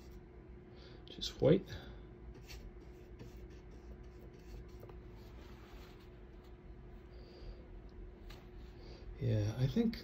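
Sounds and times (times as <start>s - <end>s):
low room hum: 0.0s - 10.0s
paintbrush strokes: 2.3s - 6.6s.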